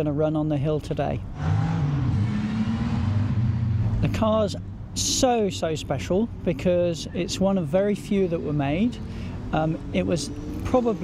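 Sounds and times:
racing car engine running hard: 1.4 - 4.2.

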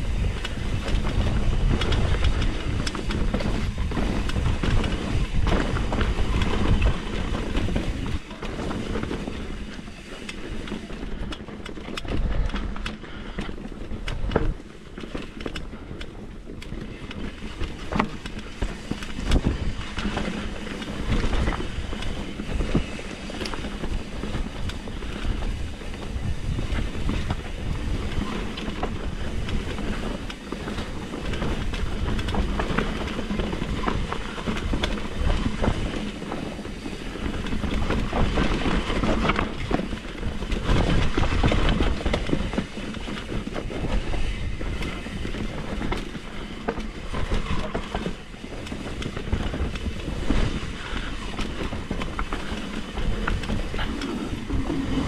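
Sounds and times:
bike rattling and knocking: 0.0 - 55.0
continuous low rumble: 0.0 - 55.0.

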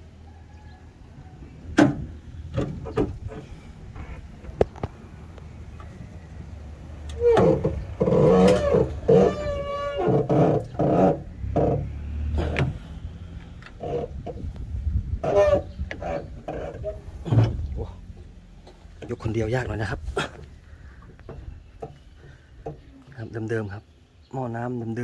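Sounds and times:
tractor hood knocks and clatter: 1.7 - 4.8, 7.2 - 11.9, 13.8 - 19.8.

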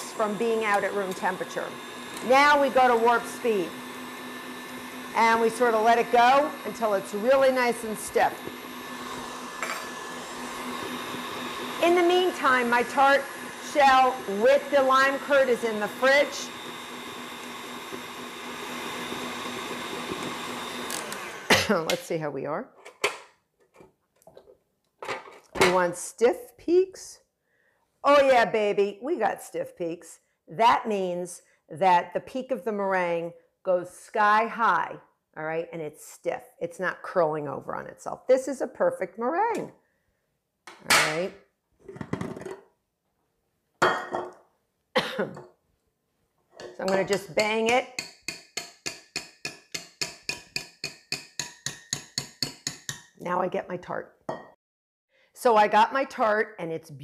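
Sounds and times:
whisk clicking in steel bowl: 46.8 - 53.1.

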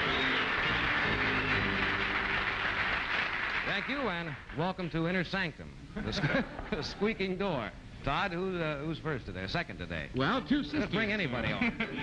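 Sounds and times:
theme music: 0.0 - 3.7
audience applauding: 0.0 - 4.6.

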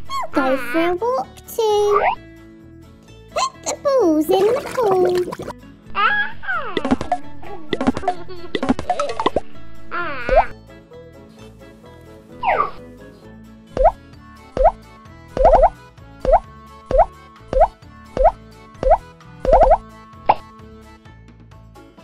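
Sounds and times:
light children's music: 0.0 - 22.0
cartoon plop sound effects: 3.4 - 5.5, 6.6 - 9.4, 13.8 - 14.0, 14.6 - 14.8, 15.4 - 20.4.

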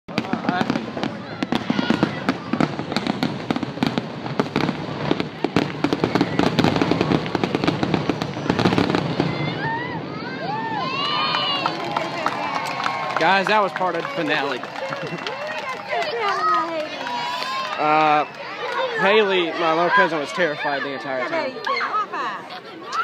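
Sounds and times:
fireworks bangs and crackles: 0.1 - 20.0
voices calling out: 0.1 - 23.0.

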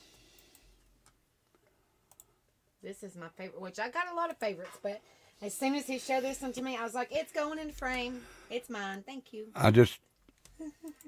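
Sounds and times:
man talking: 9.6 - 10.0.

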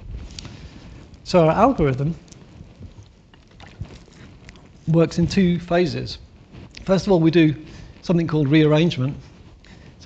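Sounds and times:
man speaking: 1.3 - 2.2, 4.9 - 6.2, 6.8 - 9.2.

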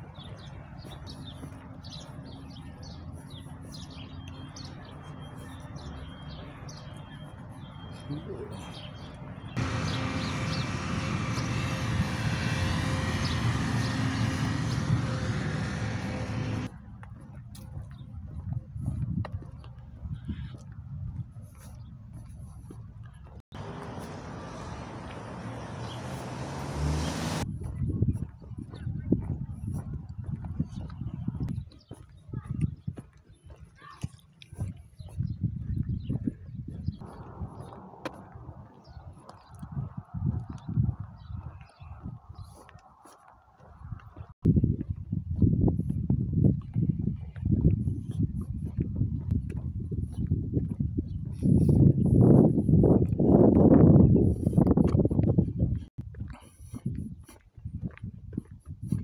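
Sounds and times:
footsteps on asphalt: 0.0 - 59.0
engine running low rumble: 0.6 - 19.2, 22.9 - 28.8, 36.3 - 41.1
microphone rumble: 35.3 - 42.2.

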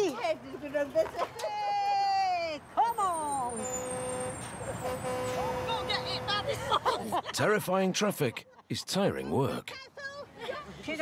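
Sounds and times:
vehicle horn: 3.6 - 6.5.

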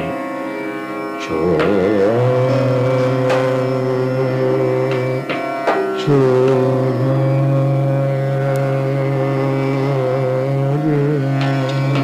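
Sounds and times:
drone: 0.0 - 12.0
man singing a long note: 1.2 - 5.4, 6.0 - 12.0.

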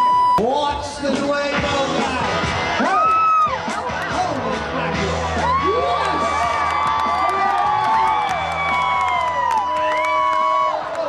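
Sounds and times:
crowd cheering and yelling: 2.2 - 11.0.

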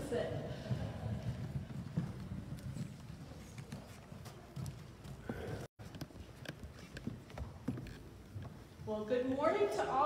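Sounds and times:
footsteps on wooden floor: 0.5 - 9.1.

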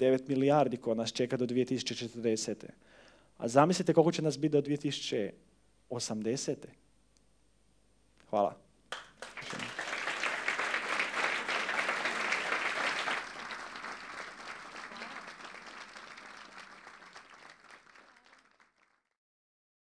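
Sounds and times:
audience applauding: 8.9 - 19.1.

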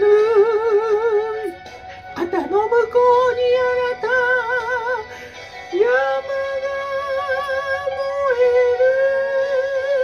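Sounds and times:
karaoke backing track: 0.0 - 10.0.

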